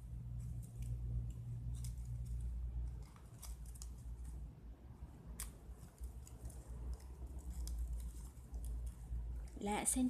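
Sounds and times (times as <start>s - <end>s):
gift ribbon rustling and crackling: 0.0s - 10.0s.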